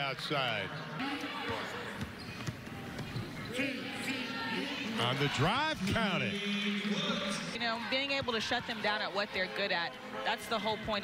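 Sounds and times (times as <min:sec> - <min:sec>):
faint voices in arena: 0:00.0 - 0:11.0.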